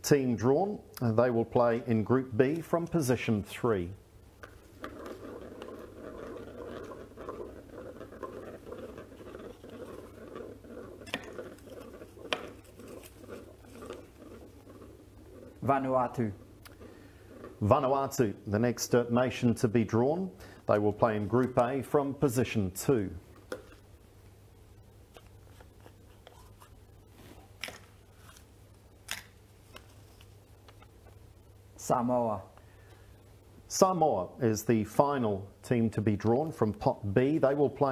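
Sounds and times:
plastic ball twisted open: 4.4 - 17.6, 27.4 - 31.2
hands handling plastic ball: 4.4 - 18.2, 25.1 - 31.3
paper rustling: 4.6 - 15.7.

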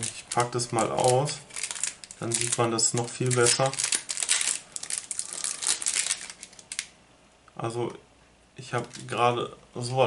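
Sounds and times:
packaging crinkling: 0.0 - 7.0, 8.8 - 9.2.

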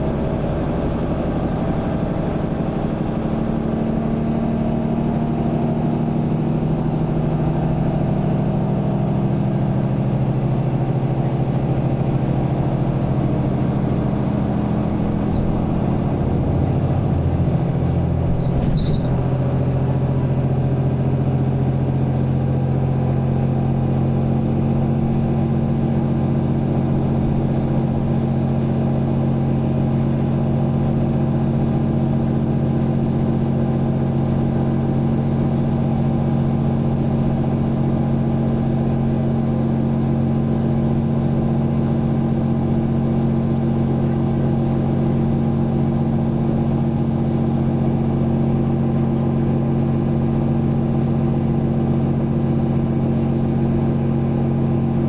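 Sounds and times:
bus diesel engine hum: 0.0 - 55.0.

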